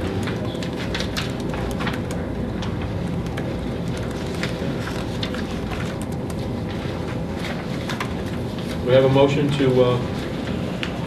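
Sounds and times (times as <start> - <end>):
low background hum: 0.0 - 11.0
papers handled: 0.0 - 11.0
laptop keyboard clicking: 0.2 - 6.5.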